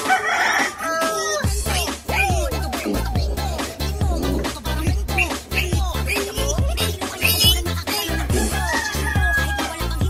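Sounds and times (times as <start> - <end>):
background music with bass beat: 0.0 - 10.0
high animal cry: 2.0 - 9.8.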